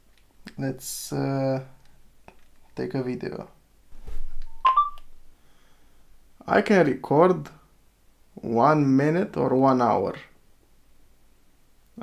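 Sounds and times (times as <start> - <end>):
rising electronic beeps: 4.6 - 5.0.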